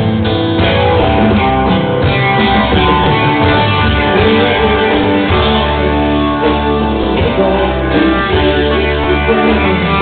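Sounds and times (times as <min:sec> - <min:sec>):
bass guitar: 0:00.0 - 0:10.0
drums: 0:00.0 - 0:10.0
electric guitars: 0:00.0 - 0:10.0
live rock band playing: 0:00.0 - 0:10.0.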